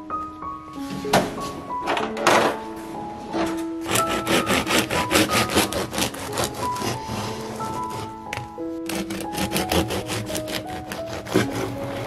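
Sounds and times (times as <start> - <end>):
background music: 0.0 - 12.0
bread knife sawing crusty bread: 3.8 - 12.0.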